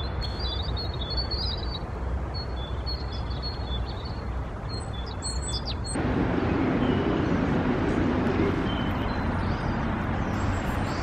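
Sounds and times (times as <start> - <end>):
low background rumble: 1.5 - 11.0.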